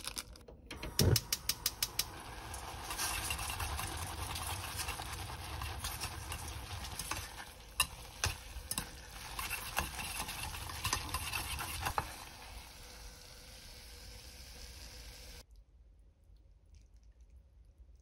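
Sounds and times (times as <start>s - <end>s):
chopsticks clicking on pot: 1.1s - 2.1s
sauce sizzling: 1.2s - 15.4s
wet sticky stirring: 2.7s - 12.2s.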